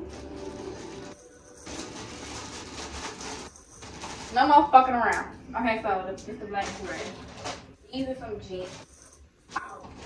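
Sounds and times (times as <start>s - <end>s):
plastic packaging crinkling: 0.0s - 4.8s, 6.6s - 7.8s, 8.4s - 10.0s.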